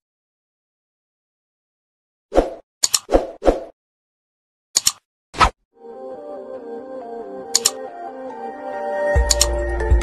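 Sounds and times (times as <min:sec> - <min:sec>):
double mouse clicks: 0:02.8 - 0:03.2, 0:04.8 - 0:05.0, 0:07.5 - 0:07.8, 0:09.2 - 0:09.6
soft music: 0:05.8 - 0:10.0.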